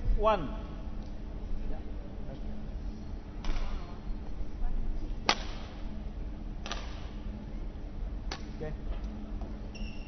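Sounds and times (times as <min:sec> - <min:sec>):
badminton racket hitting shuttlecock: 0:05.2 - 0:05.7.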